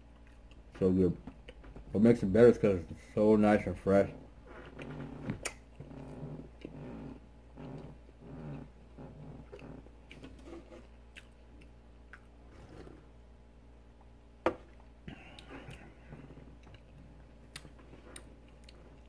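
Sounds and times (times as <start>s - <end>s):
close chewing mouth sounds: 0.1s - 1.8s, 9.4s - 12.3s, 15.2s - 19.0s.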